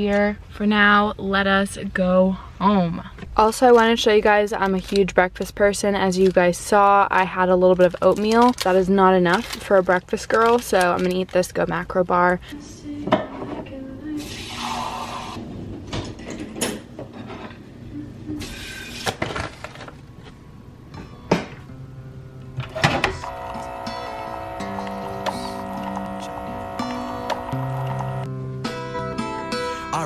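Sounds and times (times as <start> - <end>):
background music: 20.0 - 30.0.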